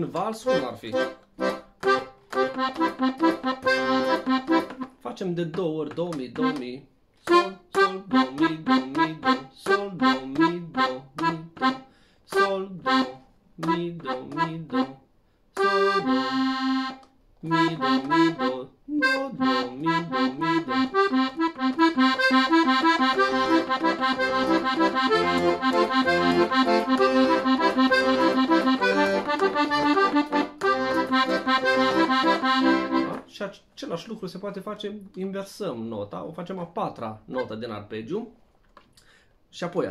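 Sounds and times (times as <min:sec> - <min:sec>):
accordion playing arpeggios: 0:00.0 - 0:05.0, 0:06.3 - 0:15.0, 0:15.6 - 0:33.3, 0:37.3 - 0:37.7.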